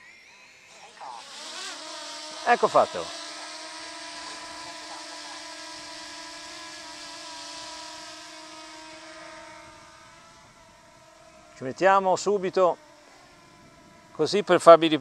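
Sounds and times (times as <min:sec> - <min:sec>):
drone propellers whining: 0:00.0 - 0:15.0.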